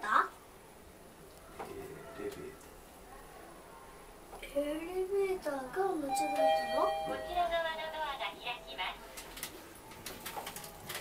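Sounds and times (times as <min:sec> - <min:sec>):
elevator two-tone chime: 0:06.1 - 0:08.0.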